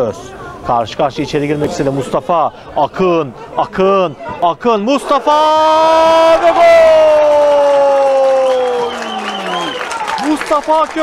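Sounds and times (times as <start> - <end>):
crowd cheering: 5.1 - 11.0.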